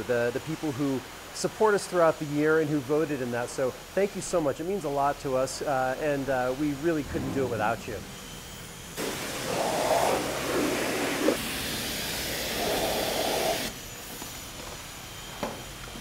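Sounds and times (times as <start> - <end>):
pressure washer spraying water: 9.0 - 14.5.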